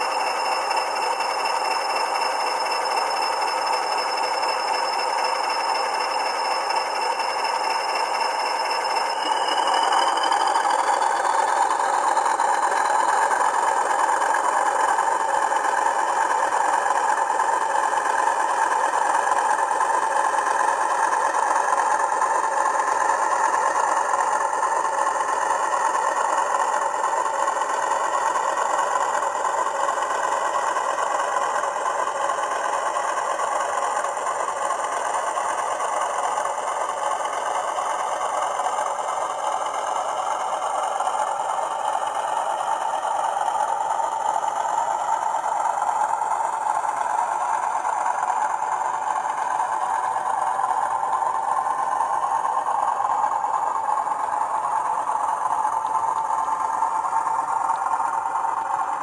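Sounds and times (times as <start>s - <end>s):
model train running: 0.0s - 59.0s.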